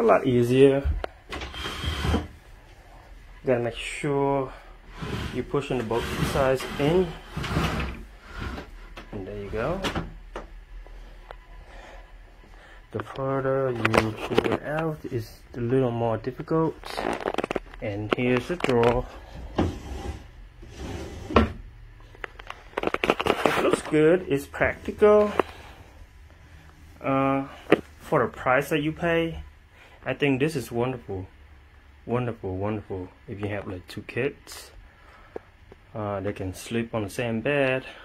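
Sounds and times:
wood rubbing on wood: 4.9s - 9.8s
wood scraping on wood: 4.9s - 9.8s, 16.6s - 21.6s, 22.4s - 25.8s.

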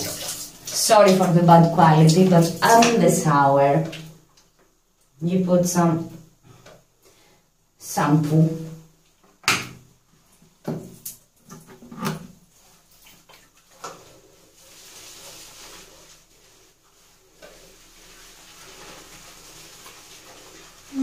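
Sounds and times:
wet hiss of lathering hair: 0.0s - 3.2s, 12.5s - 21.0s.

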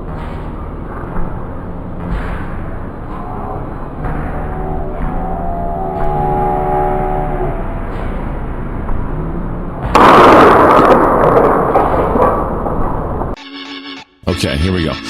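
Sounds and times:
loud noise: 0.0s - 13.4s.

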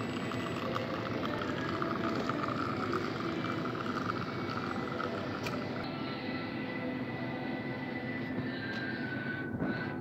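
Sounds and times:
coffee hissing into cup: 0.0s - 5.7s
espresso machine pump humming: 0.0s - 9.2s.

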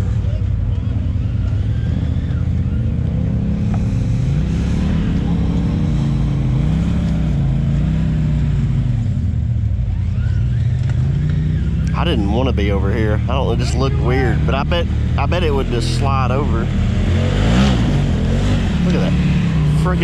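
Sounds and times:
off-road vehicle engine revving: 0.0s - 20.0s.

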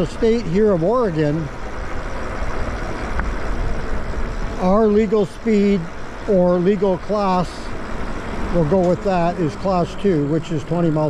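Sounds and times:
tyre noise on road: 0.0s - 11.0s.

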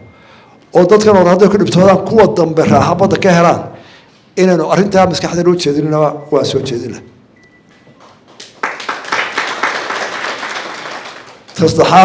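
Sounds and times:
audience applauding: 8.0s - 11.6s.

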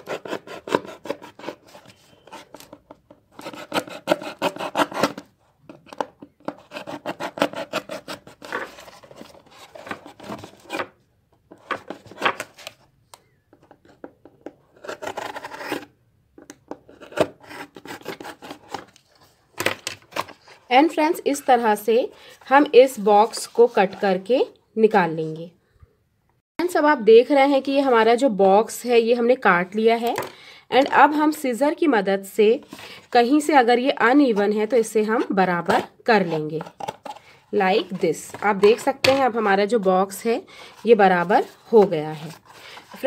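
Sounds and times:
craft knife cutting cardboard: 0.0s - 5.3s, 5.9s - 10.9s, 14.7s - 15.9s, 16.9s - 18.9s.

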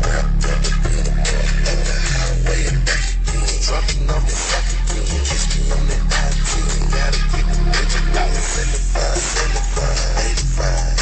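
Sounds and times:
bass-heavy music through subwoofer: 0.0s - 11.0s.

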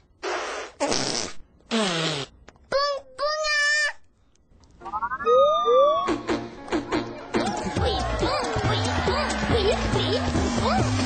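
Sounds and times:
children blowing raspberries: 0.2s - 2.4s.

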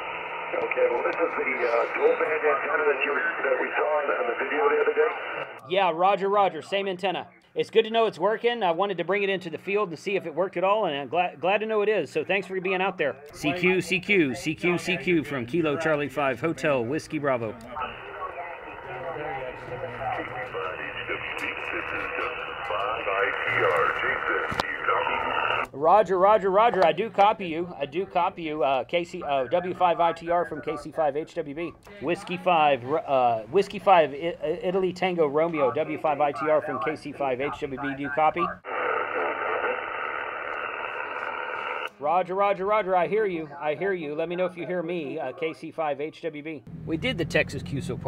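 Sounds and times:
faint steady tones: 0.0s - 5.6s
radio static hiss: 0.0s - 5.6s, 17.7s - 25.7s, 35.6s - 41.9s
muffled radio voice: 0.4s - 5.6s, 17.6s - 25.6s, 36.3s - 40.1s.

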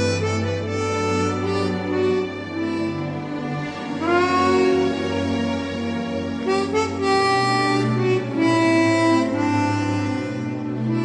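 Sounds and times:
harmonica playing slow melody: 0.0s - 5.4s, 6.4s - 11.0s
low bass accompaniment: 0.0s - 11.0s.

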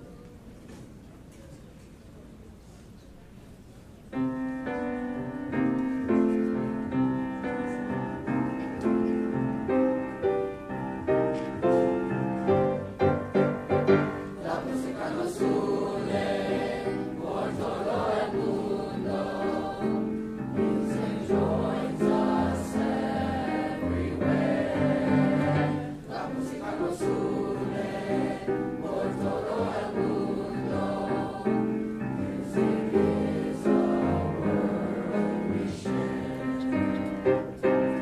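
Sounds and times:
choir singing sustained chords: 14.1s - 37.0s.

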